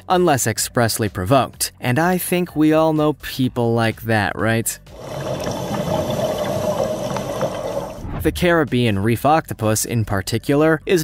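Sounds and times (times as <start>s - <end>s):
underwater rushing water: 4.9s - 8.2s.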